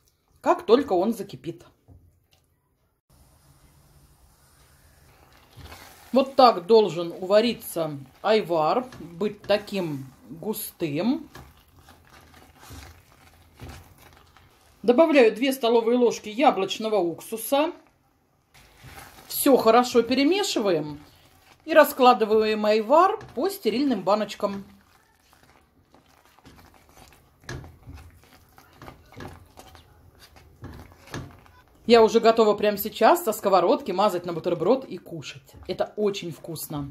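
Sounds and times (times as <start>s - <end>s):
woman speaking: 0.4s - 1.7s, 6.1s - 11.4s, 14.8s - 17.8s, 19.3s - 21.0s, 21.6s - 24.8s, 31.8s - 36.9s
spatula squelching in pan: 4.3s - 15.0s, 18.6s - 31.8s.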